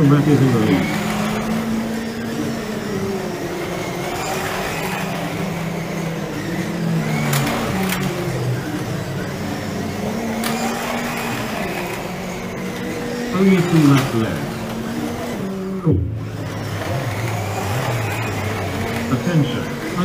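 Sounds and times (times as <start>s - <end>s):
slot car motors whining: 0.0s - 20.0s.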